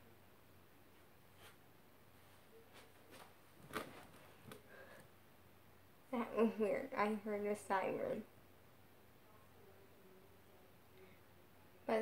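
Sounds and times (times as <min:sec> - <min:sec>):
rustling of person moving: 0:00.8 - 0:05.3.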